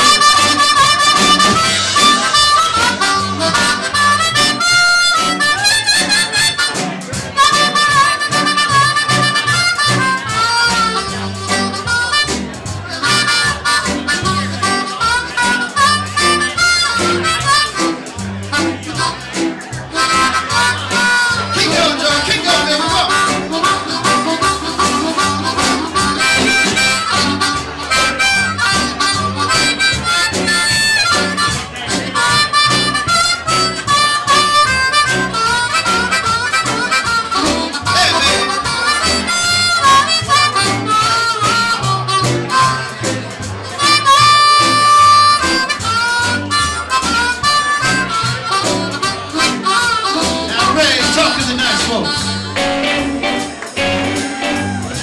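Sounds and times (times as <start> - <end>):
amplified blues harmonica solo: 0.0 - 55.0
bass and rhythm backing: 0.0 - 55.0.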